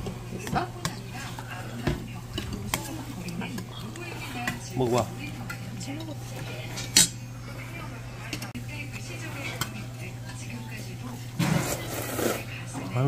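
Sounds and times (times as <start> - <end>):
utensils clinking on metal bowls: 0.0 - 7.3, 8.2 - 13.0.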